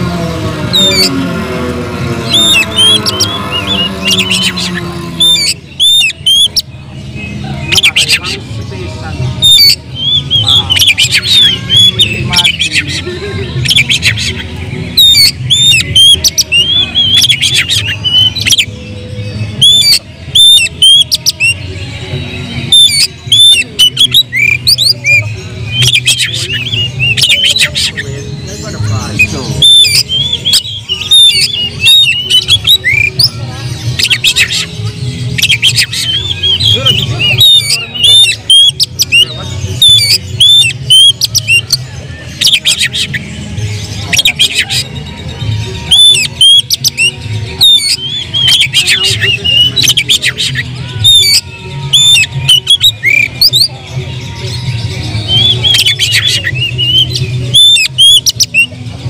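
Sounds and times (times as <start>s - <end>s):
bird chattering and squawking: 0.0s - 21.8s, 22.5s - 59.0s
bird singing whistles: 2.3s - 6.6s, 9.4s - 13.0s, 19.6s - 21.6s, 22.7s - 28.1s, 29.2s - 33.4s, 35.4s - 43.2s, 45.9s - 53.7s, 55.2s - 58.8s.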